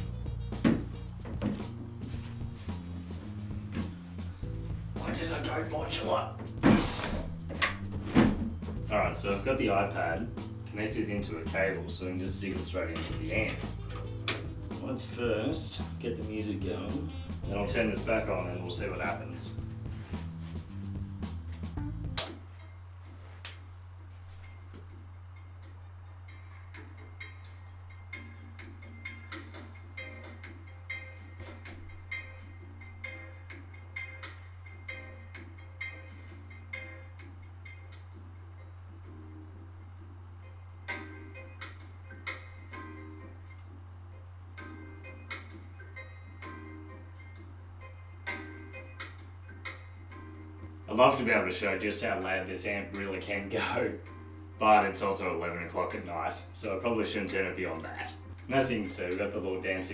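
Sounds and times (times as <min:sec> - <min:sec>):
music through small speakers: 0:00.0 - 0:22.4
steady low hum: 0:00.0 - 0:53.4.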